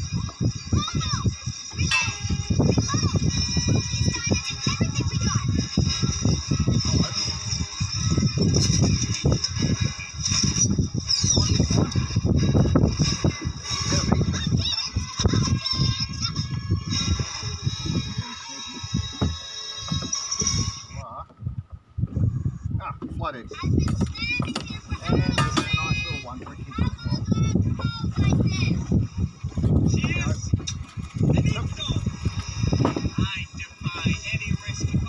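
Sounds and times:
movie voices: 0:22.2 - 0:29.0.

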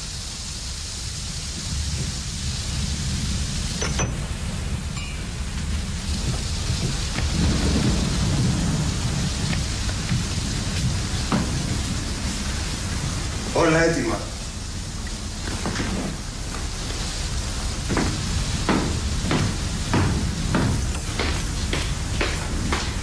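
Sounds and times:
rolling thunder rumble: 0:00.0 - 0:23.0
steady rain: 0:00.0 - 0:23.0.

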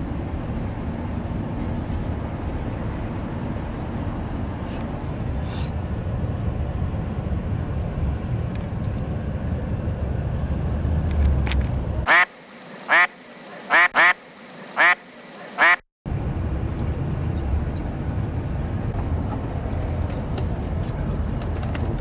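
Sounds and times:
coach road and engine rumble: 0:00.0 - 0:22.0
duck quacking: 0:12.1 - 0:15.8.

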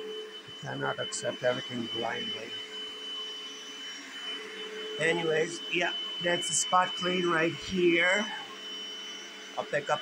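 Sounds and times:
carpet cleaner motor running: 0:00.0 - 0:10.0.

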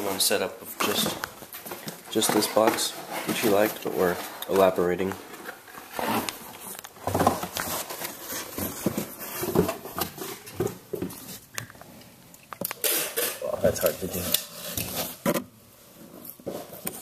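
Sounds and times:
handling noise: 0:00.0 - 0:17.0.

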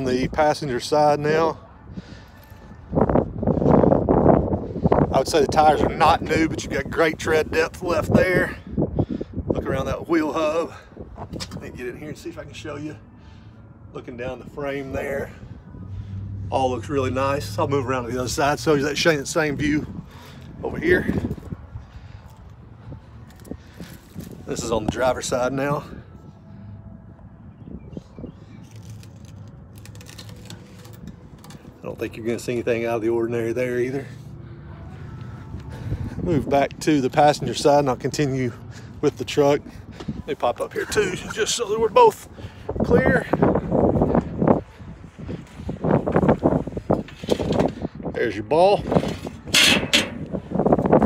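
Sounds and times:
wind rumble on microphone: 0:00.0 - 0:51.0.

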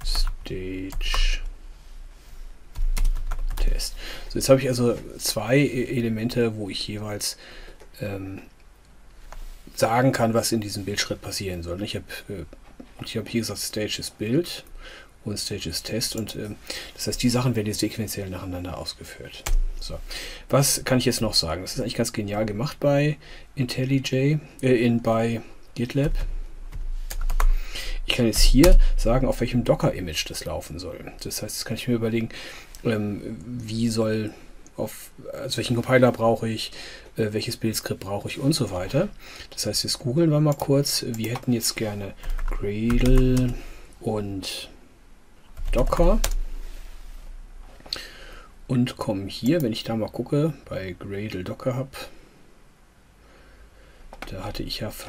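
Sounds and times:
computer keyboard typing: 0:02.7 - 0:03.8, 0:27.1 - 0:27.6, 0:42.2 - 0:43.6, 0:45.6 - 0:46.4.

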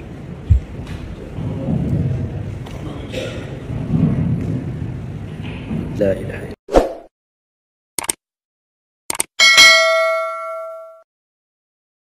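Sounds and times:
quick clicks: 0:08.0 - 0:08.2, 0:09.1 - 0:09.3
bell ding: 0:09.4 - 0:11.1.

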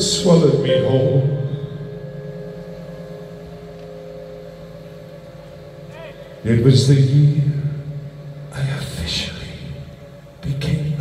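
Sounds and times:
band playing low drone chord: 0:00.0 - 0:11.0.

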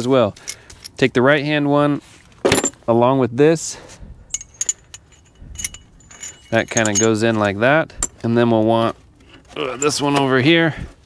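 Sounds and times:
steel tool pieces clinking: 0:04.3 - 0:08.2.

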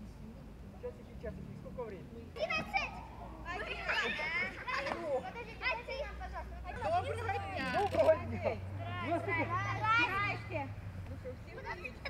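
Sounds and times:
children calling and chattering: 0:02.2 - 0:12.0.

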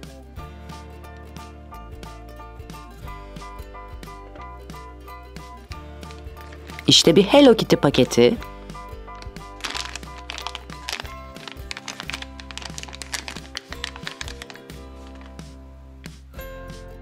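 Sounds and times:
background music: 0:00.0 - 0:17.0
foil pouch crinkling: 0:06.1 - 0:06.9, 0:09.1 - 0:15.6.

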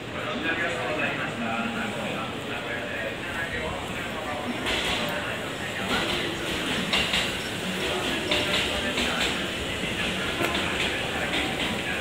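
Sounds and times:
train sounds: 0:00.0 - 0:12.0
passengers' footsteps: 0:04.0 - 0:12.0.

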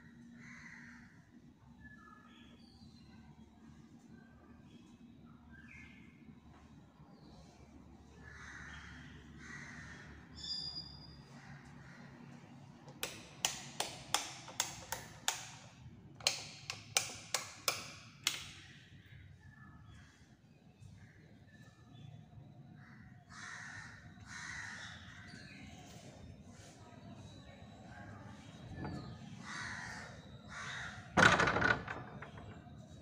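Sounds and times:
crow cawing: 0:23.3 - 0:25.0, 0:29.4 - 0:31.0.

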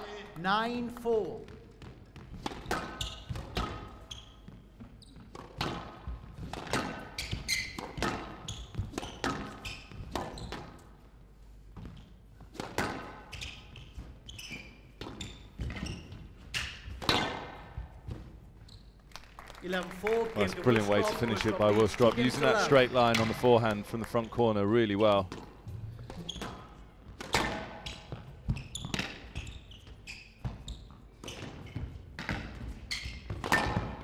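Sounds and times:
shoes squeaking on court floor: 0:00.0 - 0:19.1, 0:20.6 - 0:34.0.

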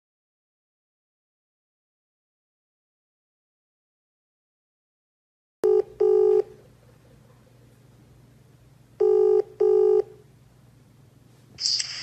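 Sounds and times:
phone ringing tone beeps: 0:05.6 - 0:06.5, 0:09.0 - 0:10.2.

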